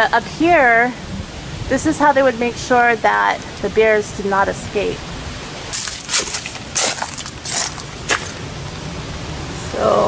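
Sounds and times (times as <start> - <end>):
wind rumble on microphone: 0.0 - 10.0
footsteps crunching on dry ground: 5.8 - 8.6.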